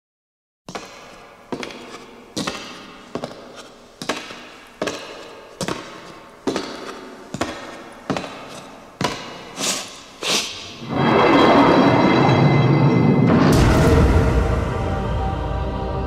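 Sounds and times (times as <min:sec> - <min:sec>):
heavy drum hits with reverb: 0:13.4 - 0:15.8.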